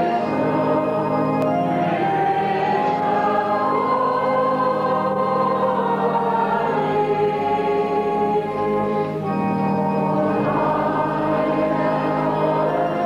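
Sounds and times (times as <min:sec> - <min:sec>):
choir singing long notes: 0:00.0 - 0:13.0.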